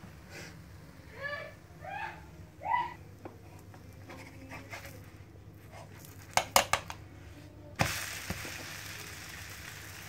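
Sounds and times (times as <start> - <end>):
dosa sizzling on a griddle: 7.8 - 10.0.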